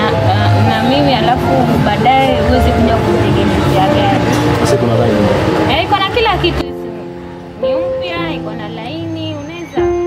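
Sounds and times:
dense background noise: 0:00.0 - 0:10.0
music with held notes: 0:00.0 - 0:10.0.

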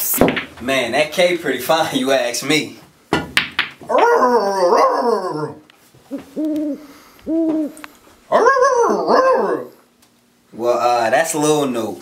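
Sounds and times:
man hooting: 0:06.6 - 0:09.8.

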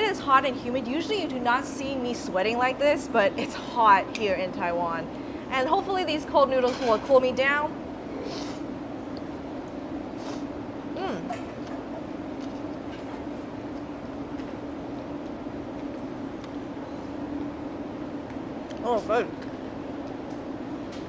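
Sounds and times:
low mechanical hum: 0:00.0 - 0:21.0
person humming mm: 0:11.0 - 0:11.5.

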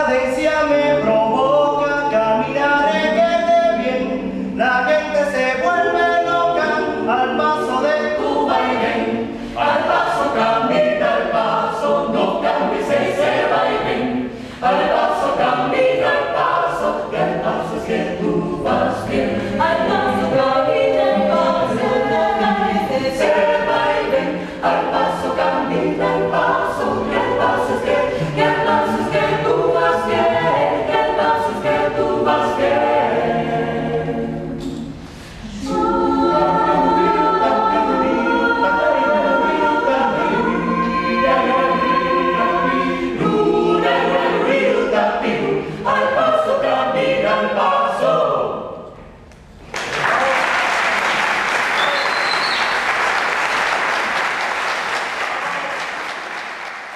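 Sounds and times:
a cappella ensemble singing: 0:00.0 - 0:49.7.

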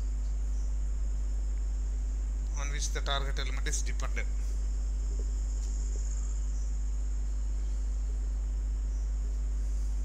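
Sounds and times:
high-pitched steady hiss: 0:00.0 - 0:10.0
strong low hum: 0:00.0 - 0:10.0.

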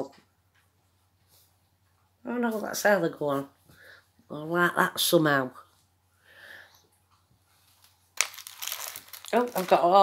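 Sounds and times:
hands handling things crackling: 0:07.6 - 0:10.0.

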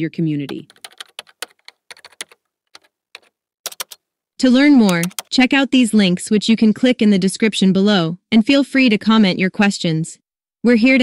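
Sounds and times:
computer keyboard typing: 0:00.5 - 0:04.0, 0:04.8 - 0:05.4.

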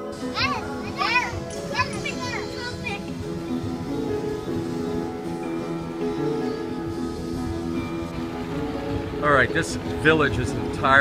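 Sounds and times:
background music: 0:00.0 - 0:11.0
children calling out: 0:00.2 - 0:03.2.

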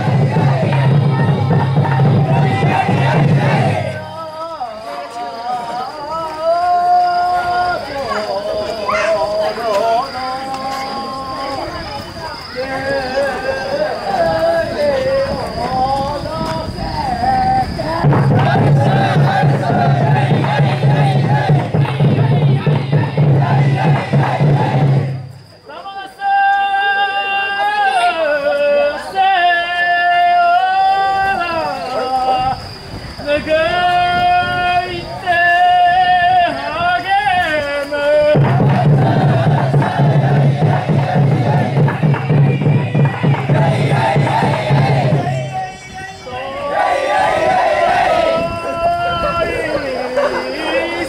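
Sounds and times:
men chanting and shouting rhythmically: 0:00.0 - 0:10.7, 0:17.7 - 0:25.2, 0:33.3 - 0:51.0
men shouting in chorus: 0:38.2 - 0:51.0.

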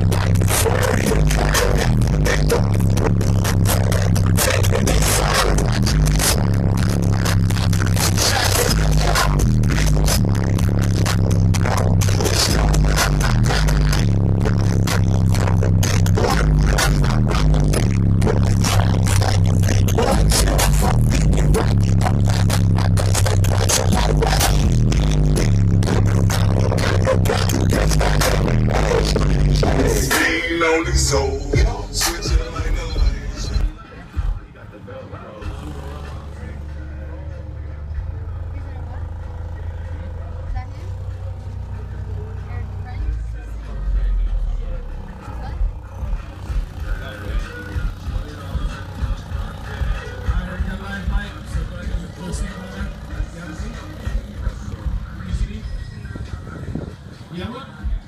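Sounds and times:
loud bass-heavy music in car: 0:00.0 - 0:58.0.

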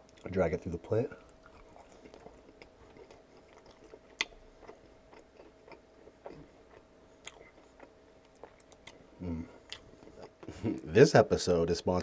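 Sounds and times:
wet chewing mouth clicks: 0:01.3 - 0:09.0.

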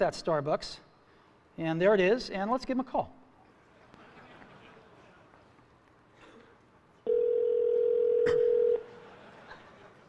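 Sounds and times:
phone ringback tone: 0:07.1 - 0:08.9.

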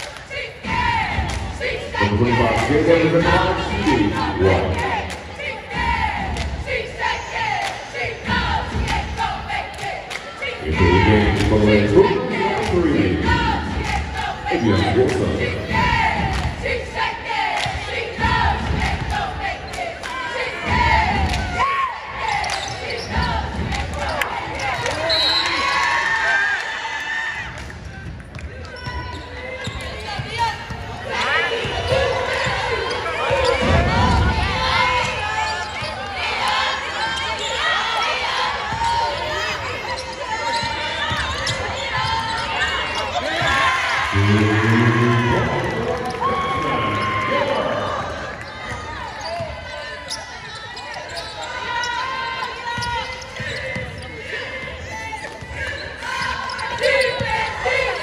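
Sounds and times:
voices calling and shouting: 0:00.3 - 0:26.2, 0:28.5 - 0:58.0.

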